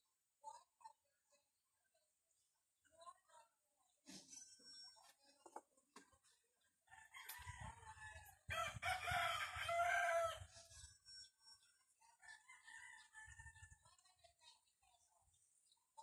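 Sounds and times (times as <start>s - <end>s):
rooster crowing: 8.5s - 10.5s.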